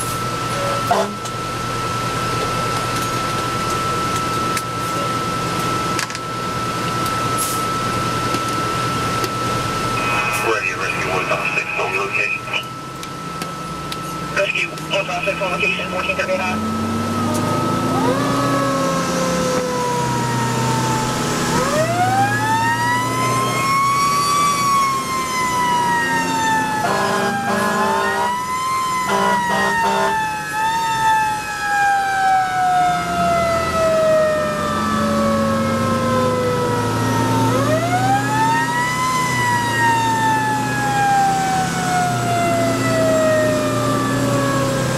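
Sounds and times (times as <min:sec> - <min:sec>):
fire engine wail siren: 0:00.0 - 0:44.9
truck engine hum: 0:00.0 - 0:44.9
short horn blasts: 0:26.8 - 0:28.3, 0:29.1 - 0:30.2.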